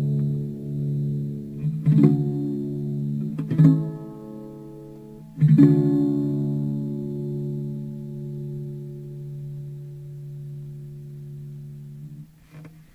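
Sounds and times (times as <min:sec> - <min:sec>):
ukulele chord ringing: 0:00.0 - 0:12.2.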